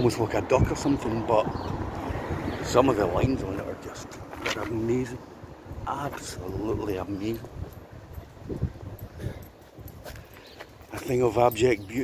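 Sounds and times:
faint low street hum: 0:00.0 - 0:12.0
soft footsteps on pavement: 0:00.0 - 0:12.0.

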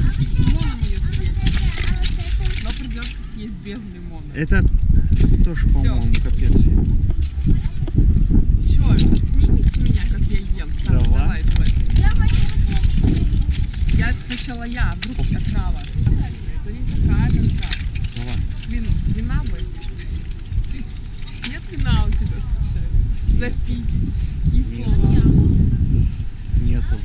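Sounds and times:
voices exclaiming: 0:00.0 - 0:04.7, 0:08.6 - 0:25.4
wind rumbling on microphone: 0:00.0 - 0:27.0.

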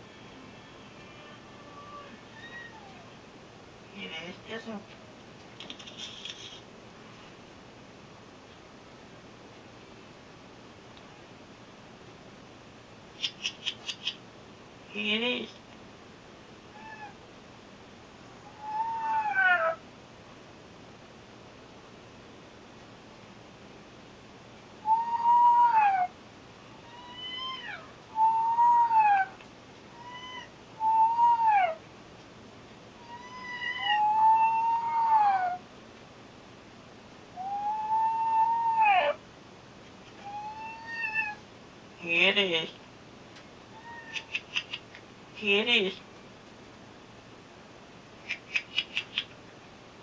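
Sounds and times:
cat meowing: 0:01.0 - 0:03.1, 0:16.7 - 0:17.2, 0:18.5 - 0:19.8, 0:26.8 - 0:31.8, 0:33.0 - 0:35.6, 0:40.2 - 0:41.4, 0:43.7 - 0:44.4.

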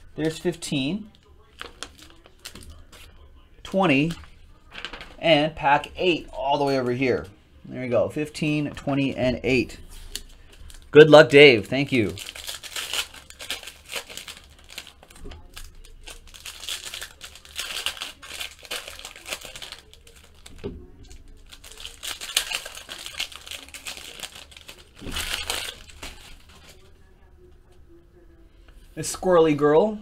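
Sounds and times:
foil wrapper crinkling and tearing: 0:01.1 - 0:03.0, 0:11.8 - 0:26.8.

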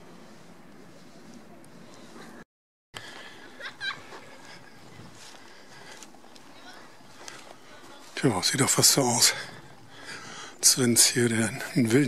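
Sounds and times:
distant voices: 0:03.0 - 0:12.0.

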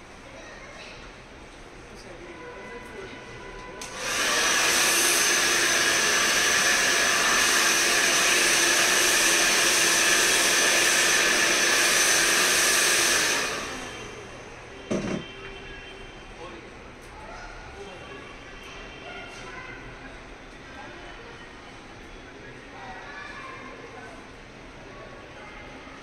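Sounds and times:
hair dryer blowing: 0:03.8 - 0:15.2
short knock: 0:14.9 - 0:15.3.

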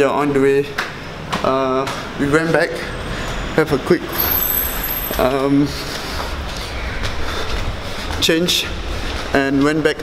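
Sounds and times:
vehicle rumble and hiss: 0:01.4 - 0:10.0.

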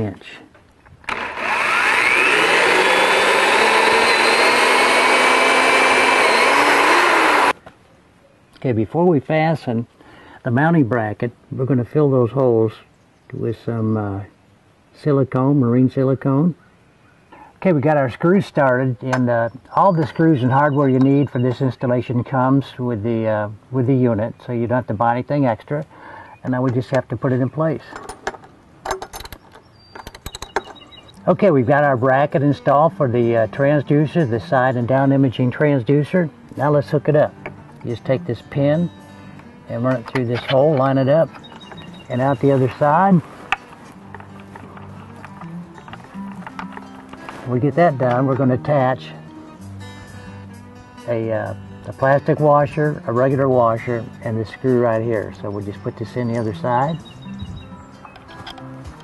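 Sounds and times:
power drill boring into boat: 0:01.1 - 0:07.6.

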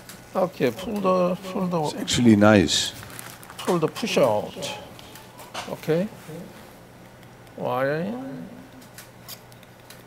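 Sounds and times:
man saying okay: 0:00.4 - 0:03.0, 0:03.6 - 0:05.0.

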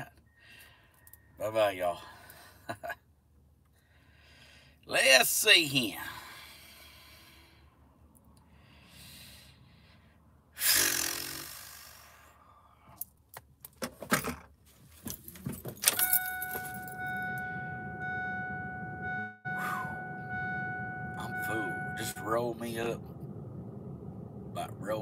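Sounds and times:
breathy exhale: 0:03.8 - 0:04.8, 0:08.5 - 0:13.0
keys jangling: 0:15.0 - 0:17.0
vehicle engine starting and running: 0:15.1 - 0:25.0
steady high tone: 0:16.0 - 0:23.4.

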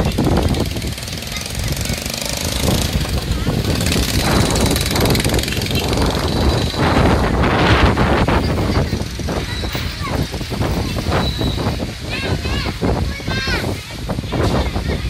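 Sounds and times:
heavy low rumble: 0:00.0 - 0:15.0
wind buffeting microphone: 0:00.0 - 0:15.0.

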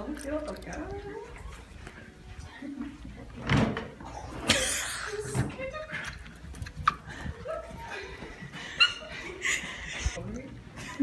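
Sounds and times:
woman laughing and squealing: 0:06.8 - 0:10.2.

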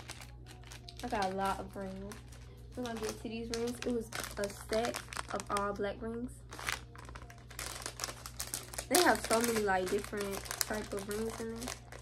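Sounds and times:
plastic zip bag crinkling: 0:00.0 - 0:12.0.

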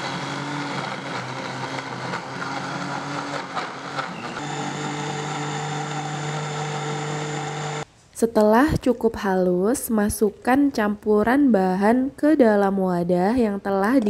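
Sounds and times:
blender motor running: 0:00.0 - 0:07.8.

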